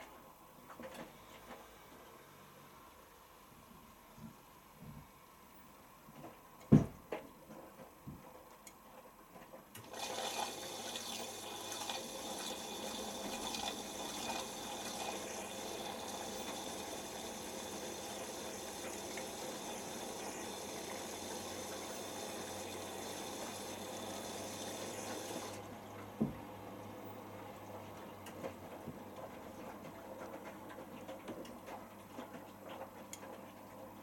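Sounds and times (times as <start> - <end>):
water rushing into washing machine: 9.8 - 26.0.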